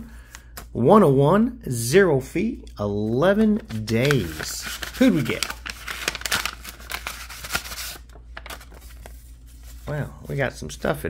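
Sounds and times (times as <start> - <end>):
paper envelope tearing: 3.6 - 9.9.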